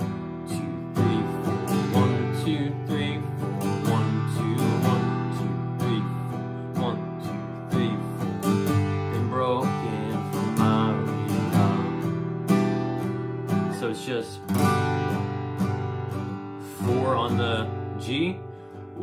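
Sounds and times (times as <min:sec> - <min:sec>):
man singing: 0:00.0 - 0:14.8, 0:16.4 - 0:19.0
acoustic guitar strumming: 0:00.0 - 0:19.0.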